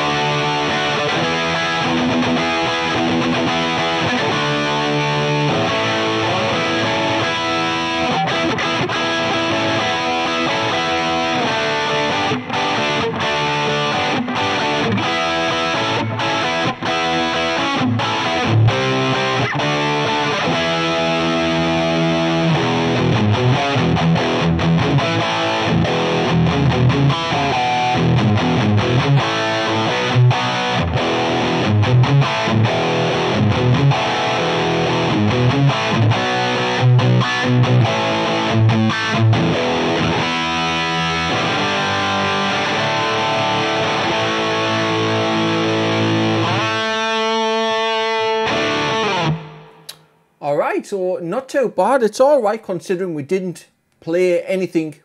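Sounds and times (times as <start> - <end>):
distorted electric guitar: 0.0 - 51.0.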